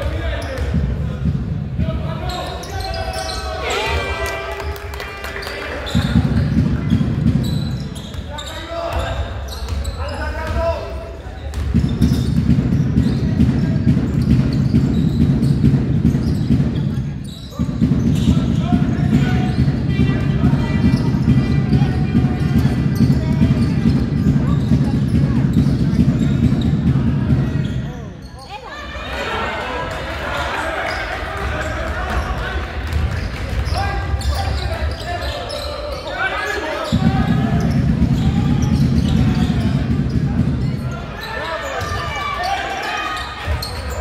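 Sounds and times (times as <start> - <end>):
sneakers squeaking: 0.0 - 44.0
ball bouncing on wooden court: 5.9 - 8.3, 11.5 - 27.8, 36.8 - 40.9.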